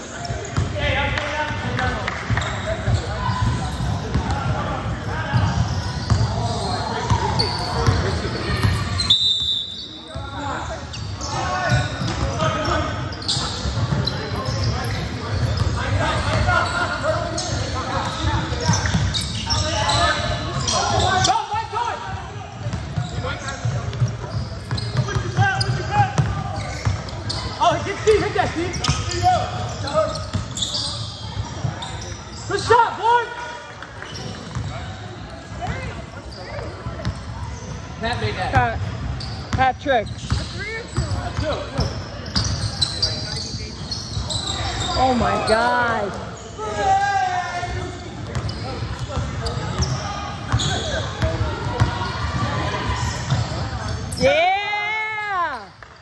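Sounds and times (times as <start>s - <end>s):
players calling out: 0.0s - 55.7s.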